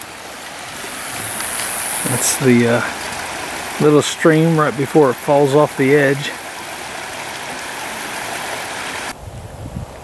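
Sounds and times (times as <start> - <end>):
stream rushing over rocks: 0.0 - 9.2.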